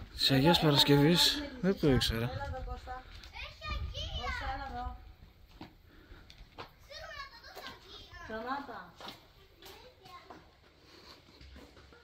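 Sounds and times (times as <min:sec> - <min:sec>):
children talking and calling out: 0:00.3 - 0:12.0.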